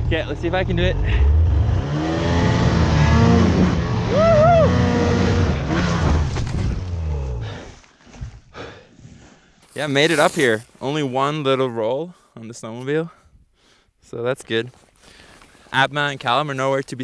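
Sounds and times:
snowmobile engine revving: 0.9 - 6.3, 9.7 - 11.0.

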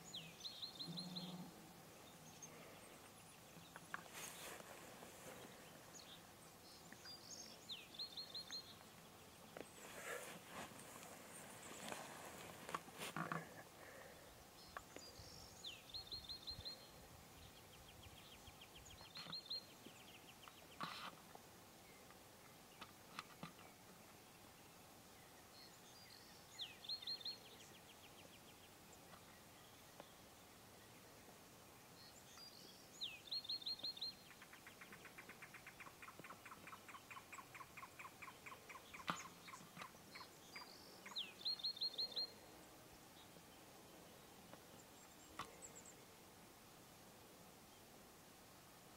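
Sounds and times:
small songbird singing: 0.0 - 4.6, 5.6 - 9.9, 14.6 - 20.9, 24.6 - 30.2, 32.0 - 42.5.

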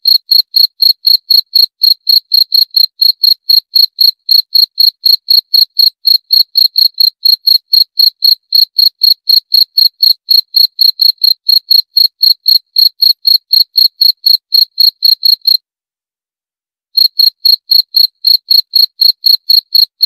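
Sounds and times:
cricket chirping: 17.0 - 20.0.

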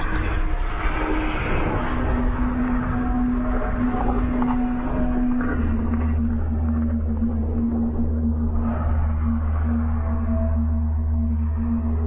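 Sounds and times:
low droning soundtrack: 0.0 - 12.0.

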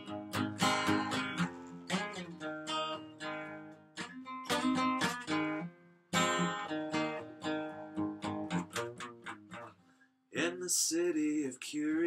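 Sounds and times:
acoustic guitar strumming: 0.0 - 10.5.

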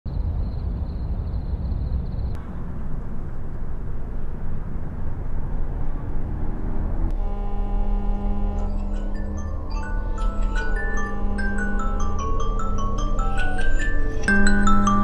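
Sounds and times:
distant traffic rumble: 0.1 - 15.0
pitched tone with overtones: 7.1 - 15.0
thin high whine: 7.1 - 15.0
music: 7.4 - 15.0.

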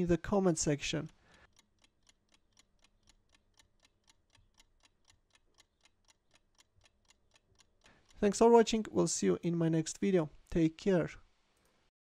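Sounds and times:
clock timer ticking: 0.0 - 10.6.

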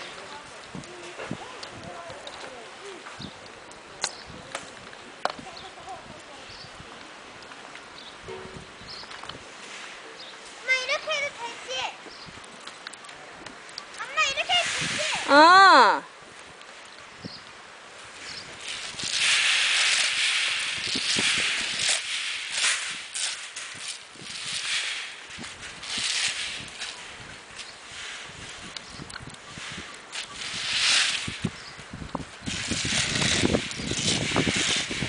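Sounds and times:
sharp crackling: 7.4 - 35.0
coffee beans raked on mesh: 9.5 - 11.8, 14.1 - 15.6, 18.0 - 35.0.

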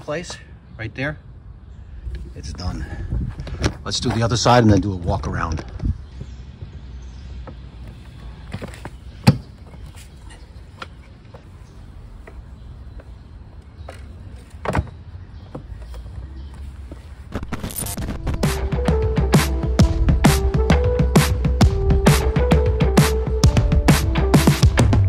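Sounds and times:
music: 17.6 - 25.0.

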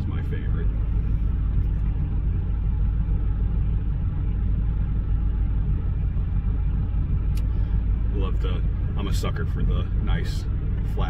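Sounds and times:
vehicle idling rumble: 0.0 - 11.0.

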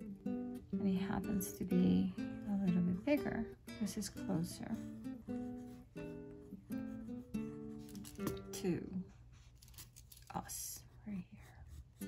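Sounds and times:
woman whispering: 10.3 - 11.8.

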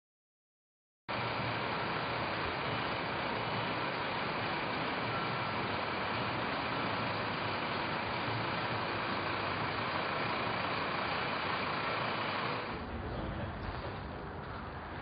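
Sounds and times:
city street traffic: 1.1 - 15.0.

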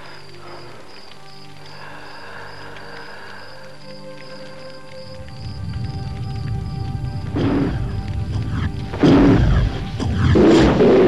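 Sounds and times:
film score music: 0.0 - 11.0
campfire flaring whoosh: 5.1 - 11.0.

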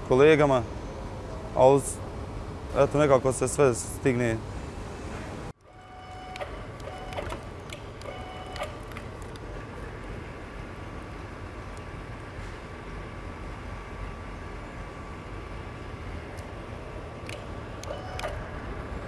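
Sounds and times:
short beeps: 5.7 - 7.4, 8.0 - 8.8.

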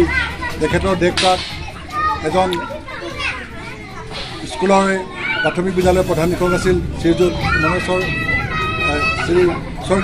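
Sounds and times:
children's voices: 0.0 - 10.0
man speaking into a microphone: 4.6 - 8.1.

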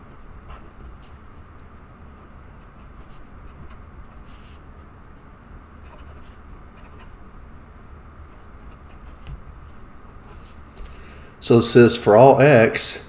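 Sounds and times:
steady low hum: 0.0 - 13.0
marker scratching on paper: 0.1 - 4.8, 5.8 - 7.2, 8.3 - 10.6.

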